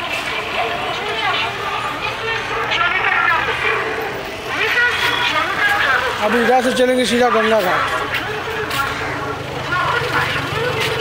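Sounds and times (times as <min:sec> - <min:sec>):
low hum of traffic: 0:00.0 - 0:11.0
voices of people: 0:00.0 - 0:11.0.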